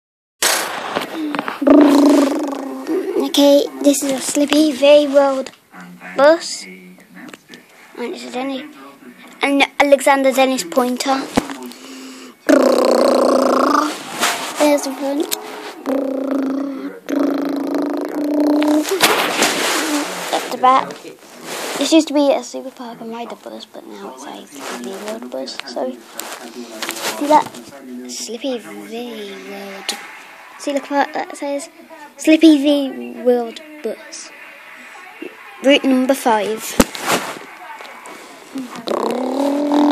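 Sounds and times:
rushing rubbing noise: 0.4 - 5.4, 12.5 - 22.0, 28.9 - 31.3, 35.7 - 39.9
person imitating engine buzz: 1.6 - 3.2, 12.5 - 13.9, 15.8 - 19.0
breathy rushing hiss: 11.7 - 20.6.

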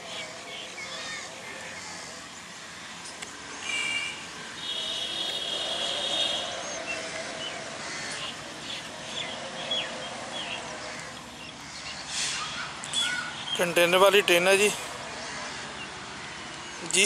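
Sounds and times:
crows calling: 0.0 - 2.4, 4.6 - 13.9, 15.1 - 16.5
birds chirping and calling: 0.0 - 17.0
steady outdoor hiss: 0.0 - 17.0.

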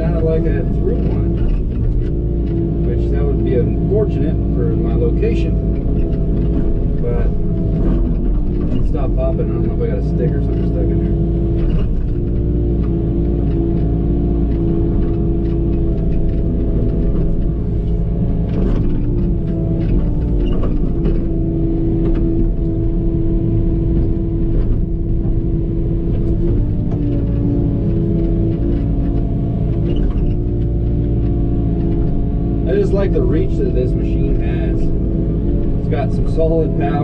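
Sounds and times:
diesel engine under load: 0.0 - 37.0.

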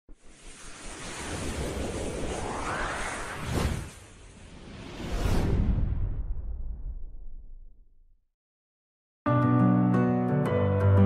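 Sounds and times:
rushing whoosh: 0.2 - 7.2.

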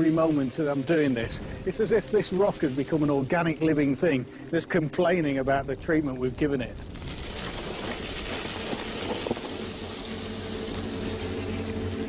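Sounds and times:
vinegar hissing on hot rock: 0.0 - 4.6, 6.8 - 12.0
faint crackles: 0.0 - 12.0
low steady hum: 0.0 - 12.0.

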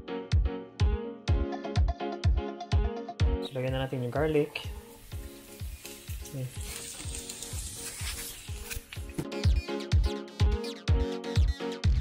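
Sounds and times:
background music with steady beat: 0.0 - 6.4, 7.0 - 12.0
garlic sizzling in frying pan: 3.5 - 9.2.

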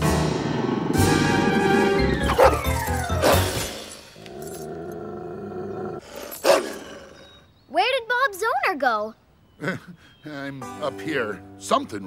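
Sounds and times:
dramatic music: 0.0 - 4.2
cartoon dog growling roar: 4.2 - 6.0.

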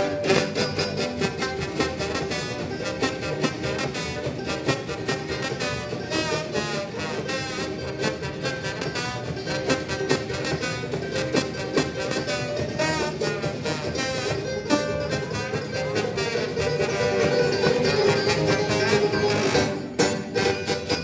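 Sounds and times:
banjo: 0.0 - 21.0
brass melody: 0.0 - 21.0
drums keeping a steady beat: 0.0 - 21.0
upright bass: 0.0 - 21.0.

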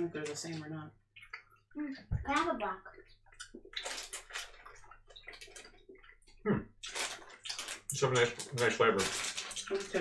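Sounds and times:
plastic snack bag crinkling: 3.8 - 5.8, 6.8 - 10.0.

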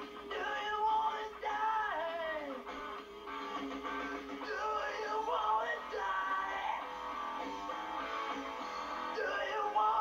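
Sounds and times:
rock backing track: 0.0 - 10.0
man singing karaoke: 0.3 - 2.6, 4.4 - 6.8, 9.1 - 10.0.

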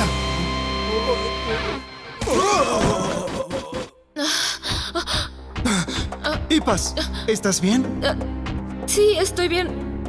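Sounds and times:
action background music: 4.6 - 10.0.

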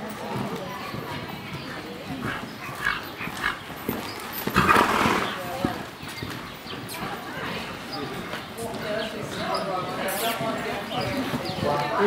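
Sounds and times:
horse hooves trotting on dirt: 0.0 - 12.0.

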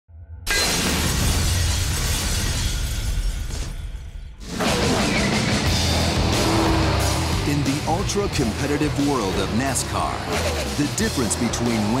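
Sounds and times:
glass shattering: 0.5 - 4.1.

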